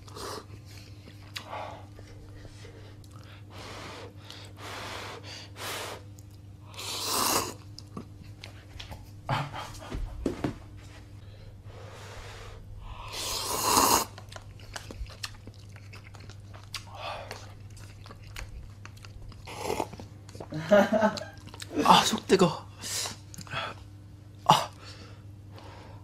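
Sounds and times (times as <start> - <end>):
person chewing: 0.0 - 2.4, 6.1 - 8.5, 13.1 - 20.5, 21.1 - 21.8
person slurping noodles: 6.7 - 7.6, 13.0 - 14.2, 19.4 - 20.0.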